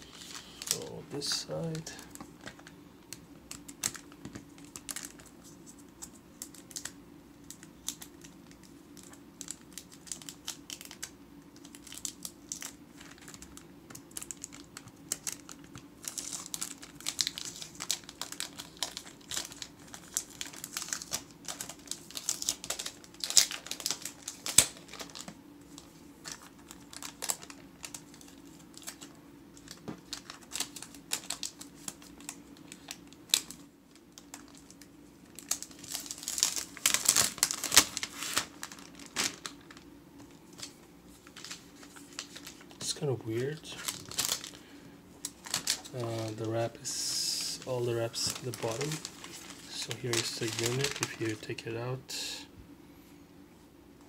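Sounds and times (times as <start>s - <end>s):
plastic crinkles: 0.0s - 51.6s
faint low hum: 0.0s - 54.0s
fingernails picking plastic wrap: 43.8s - 44.6s, 47.4s - 51.3s.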